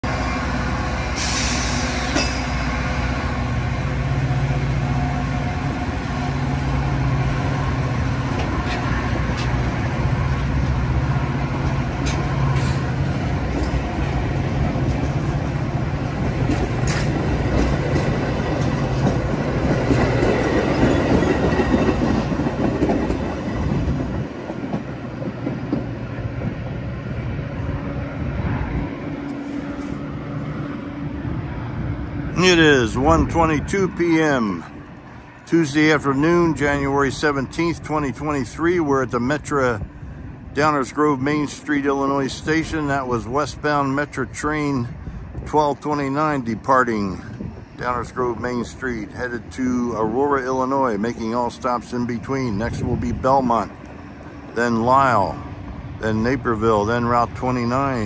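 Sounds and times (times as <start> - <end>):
train cars rolling past: 0.0 - 58.0.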